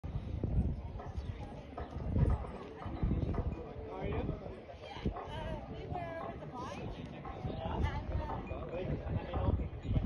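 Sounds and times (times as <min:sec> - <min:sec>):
horse hoofbeats on sand: 0:00.4 - 0:09.8
people talking: 0:00.4 - 0:10.0.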